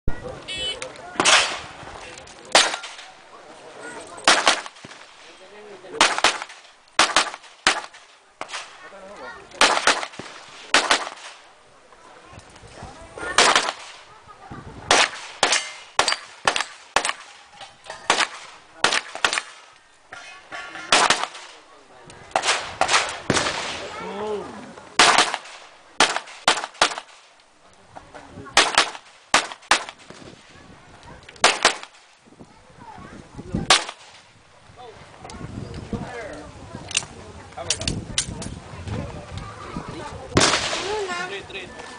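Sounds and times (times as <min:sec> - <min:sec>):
handgun shots: 0:02.5 - 0:03.1, 0:04.2 - 0:05.0, 0:06.0 - 0:08.7, 0:09.6 - 0:11.3, 0:13.4 - 0:14.0, 0:14.9 - 0:17.3, 0:18.1 - 0:19.6, 0:25.0 - 0:27.1, 0:28.6 - 0:30.1, 0:31.4 - 0:31.9.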